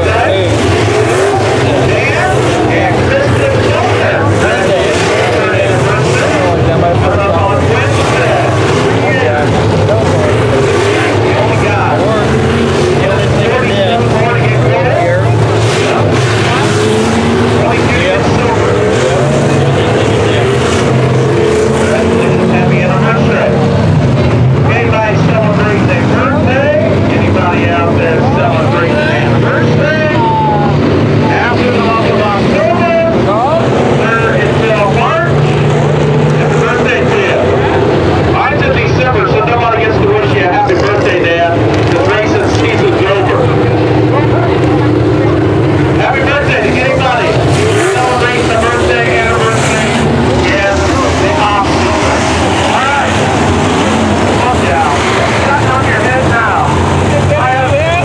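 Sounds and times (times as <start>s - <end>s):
crowd chatter: 0.0s - 58.0s
race car engines revving: 0.0s - 58.0s.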